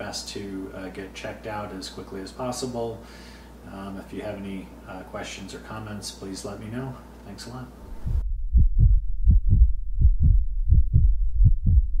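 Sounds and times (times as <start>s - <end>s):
heartbeat thumps: 7.9s - 12.0s.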